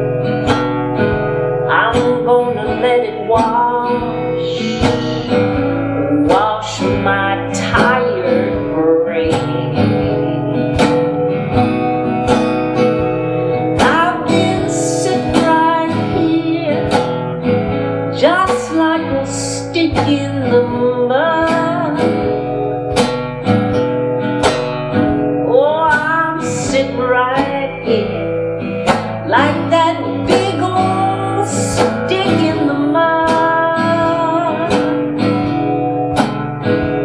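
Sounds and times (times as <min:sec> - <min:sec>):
acoustic guitar strumming: 0:00.0 - 0:37.0
woman singing: 0:00.4 - 0:10.6, 0:13.5 - 0:23.1, 0:25.3 - 0:37.0.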